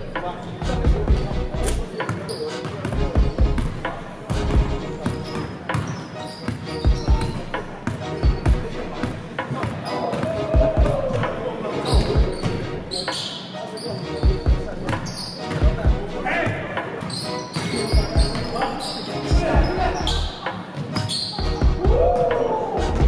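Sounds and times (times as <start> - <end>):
sneakers squeaking on court: 1.8 - 3.0, 5.0 - 10.3, 11.1 - 15.7, 16.4 - 21.7.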